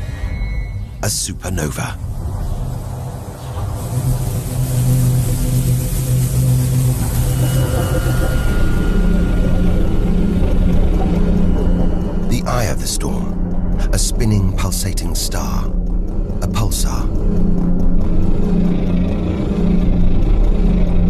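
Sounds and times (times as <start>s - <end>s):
deep rumbling drone: 1.8s - 21.0s.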